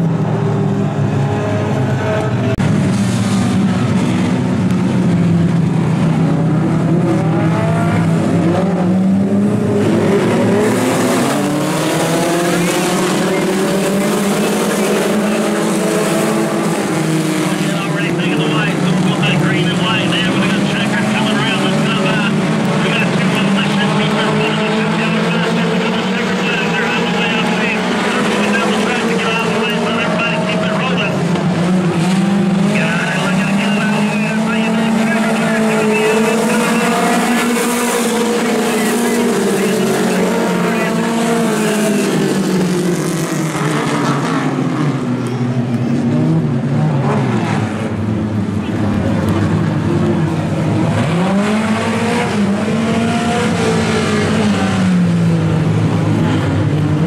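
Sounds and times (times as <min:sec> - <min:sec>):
race car engines running hard: 0:00.0 - 0:57.0.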